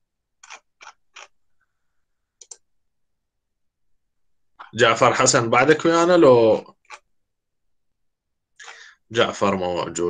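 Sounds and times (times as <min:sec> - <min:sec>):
computer mouse clicks: 0:00.4 - 0:01.4, 0:02.4 - 0:02.7.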